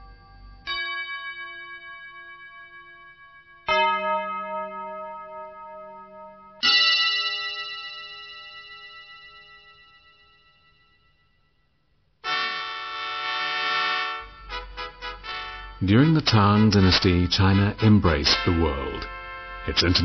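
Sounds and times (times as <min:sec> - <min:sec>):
struck bell-like tones: 0:00.0 - 0:11.8, 0:14.2 - 0:20.0.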